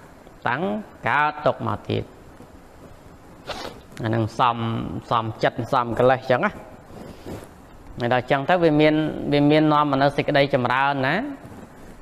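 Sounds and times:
faint steady hiss: 0.0s - 12.0s
breath-like hiss: 3.4s - 3.9s
man speaking: 4.0s - 6.6s, 8.0s - 11.4s.

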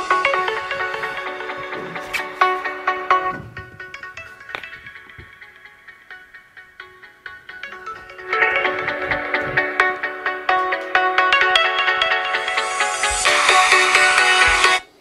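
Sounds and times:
electronic dance music from phone: 0.0s - 15.0s
microphone handling bumps: 0.8s - 5.4s, 8.0s - 10.1s.

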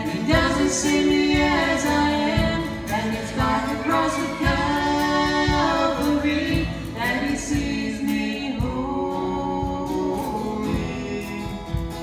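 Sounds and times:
guitar accompaniment: 0.0s - 12.0s
woman and man singing: 0.0s - 12.0s.

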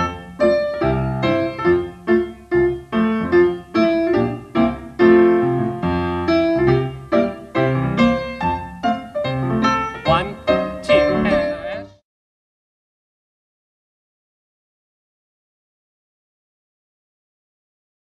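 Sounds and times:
solo piano playing: 0.0s - 12.0s.

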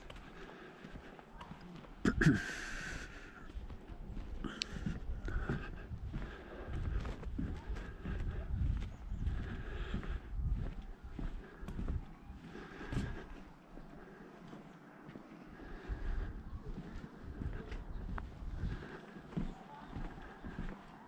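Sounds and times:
footsteps on boardwalk: 0.0s - 21.0s
low rumbling noise: 2.0s - 21.0s.

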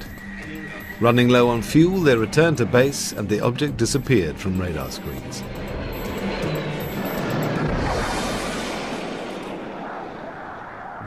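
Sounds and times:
jet engine roar: 0.0s - 11.0s.

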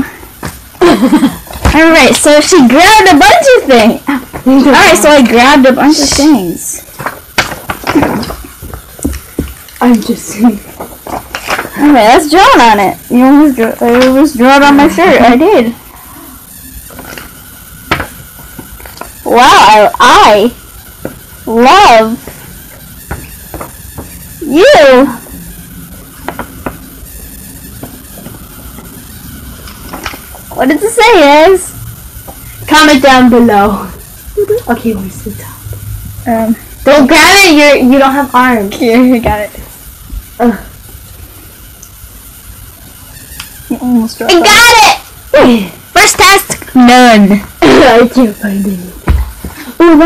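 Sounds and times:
rustling: 0.0s - 50.0s
paper rustling: 10.7s - 11.8s.

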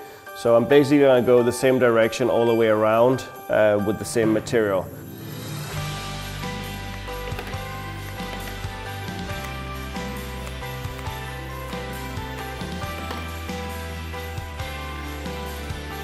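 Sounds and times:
background music of held notes: 0.0s - 16.0s.

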